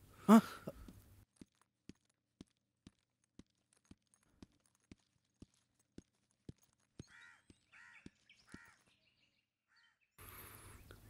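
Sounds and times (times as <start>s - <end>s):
cawing bird calls: 7.0s - 11.0s.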